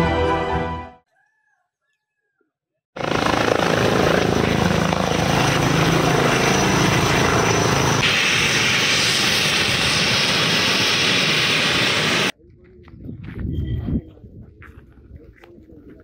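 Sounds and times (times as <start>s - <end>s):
helicopter rotor and turbine noise: 3.0s - 12.4s.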